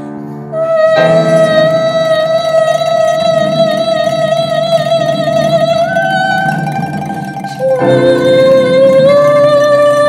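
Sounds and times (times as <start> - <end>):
grand piano: 0.0 - 10.0
plucked pipa: 0.0 - 10.0.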